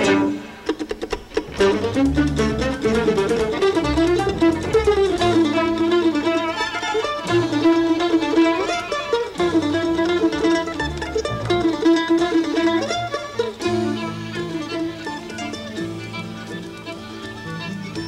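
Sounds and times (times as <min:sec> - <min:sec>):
mandolin picking: 0:00.0 - 0:18.0
string band playing: 0:00.0 - 0:18.0.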